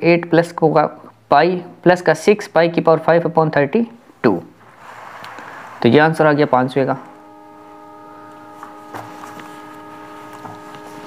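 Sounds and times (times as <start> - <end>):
steady hum of held tones: 4.0 - 11.0.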